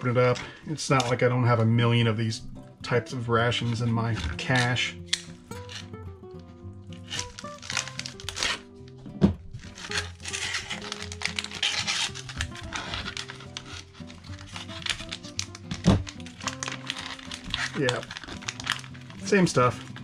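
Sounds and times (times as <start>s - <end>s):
background music: 0.0s - 20.0s
foil pouch tearing and crinkling: 4.1s - 6.0s, 6.9s - 9.0s, 9.6s - 20.0s.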